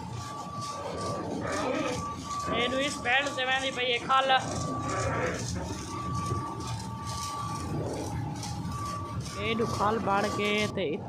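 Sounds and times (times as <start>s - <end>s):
machinery high whine: 0.0s - 11.0s
mill machinery rumble: 0.0s - 11.0s.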